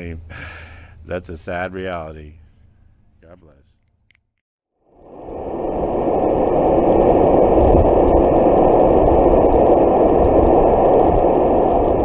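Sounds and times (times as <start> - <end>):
ocean surf breaking on beach: 5.1 - 12.0.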